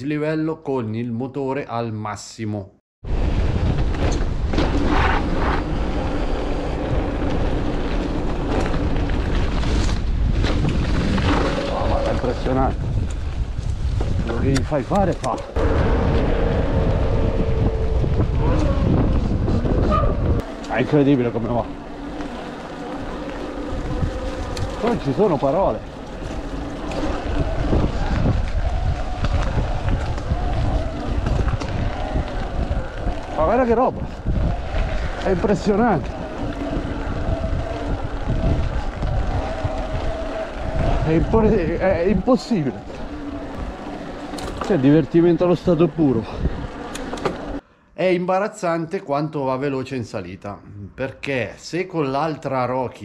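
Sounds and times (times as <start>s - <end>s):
wind buffeting microphone: 3.0s - 47.6s
tyres rolling on gravel: 3.1s - 14.9s, 20.4s - 47.6s.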